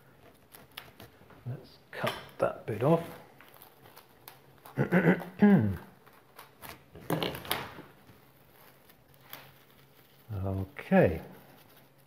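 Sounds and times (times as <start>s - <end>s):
man talking: 1.4s - 3.2s, 5.4s - 5.9s, 10.3s - 11.4s
plastic film crinkling: 2.7s - 12.0s.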